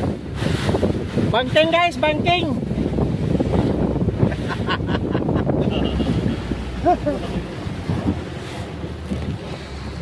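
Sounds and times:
boat engine rumbling: 0.0 - 10.0
water washing past: 0.0 - 10.0
wind buffeting microphone: 0.0 - 10.0.

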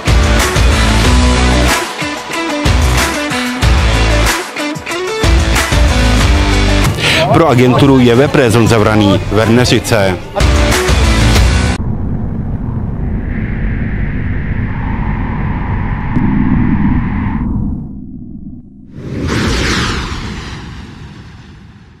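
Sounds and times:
low rumbling drone: 11.3 - 22.0
steady higher tone: 11.8 - 18.9
whoosh: 11.8 - 22.0.

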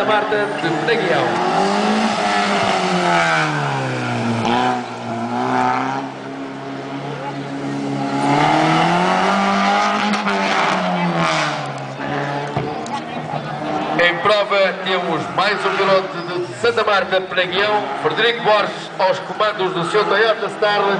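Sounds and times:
car engine revving hard: 0.0 - 12.7.

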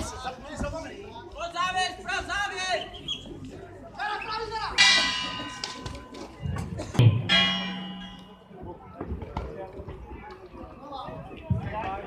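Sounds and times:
boxing ring bell ringing: 4.8 - 6.1, 7.2 - 8.6.

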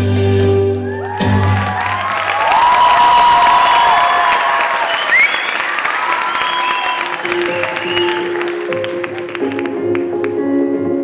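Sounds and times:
music: 0.0 - 2.2, 6.2 - 11.0
audience clapping and cheering: 0.6 - 10.5
long whistles: 3.3 - 8.4.

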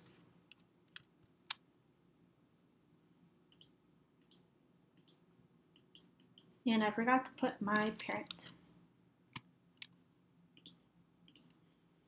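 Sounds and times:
computer clicks: 3.5 - 5.2, 5.8 - 8.5, 10.6 - 11.6.

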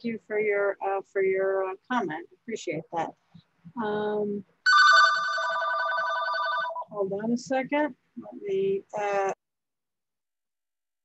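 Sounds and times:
telephone ringing: 4.7 - 6.9.

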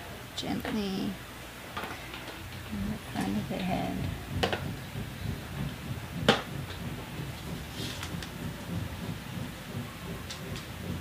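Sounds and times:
low uneven rumble: 2.4 - 11.0.

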